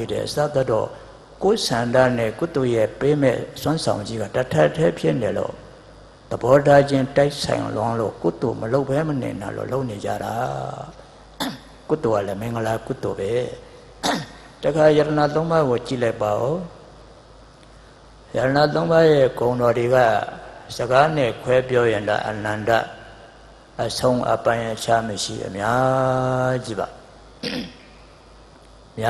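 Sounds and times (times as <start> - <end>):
man speaking into a microphone: 0.0 - 11.2, 11.9 - 16.8, 18.3 - 27.1
man clearing throat: 11.4 - 11.8, 14.0 - 14.5, 27.4 - 28.0
short breathy hiss: 17.6 - 18.3.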